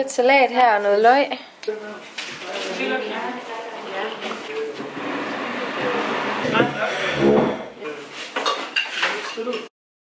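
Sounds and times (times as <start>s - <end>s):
background chatter: 0.1s - 9.7s
dishes and cutlery clinking: 8.3s - 9.7s.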